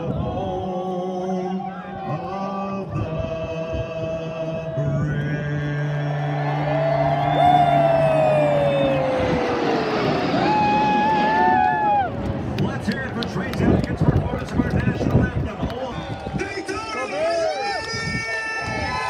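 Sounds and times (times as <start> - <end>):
crowd cheering: 5.9 - 19.0
military jets flying low overhead: 6.3 - 16.4.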